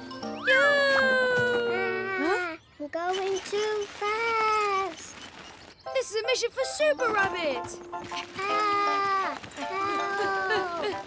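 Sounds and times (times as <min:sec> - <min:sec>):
children's music: 0:00.0 - 0:02.4, 0:05.8 - 0:11.0.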